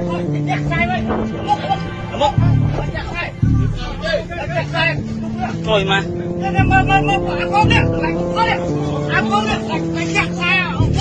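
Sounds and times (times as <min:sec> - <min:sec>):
background music: 0:00.0 - 0:11.0
people talking: 0:00.0 - 0:11.0.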